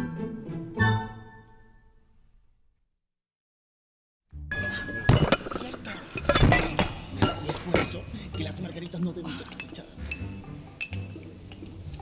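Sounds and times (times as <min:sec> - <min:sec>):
teacups and saucers clinking: 0:04.6 - 0:12.0.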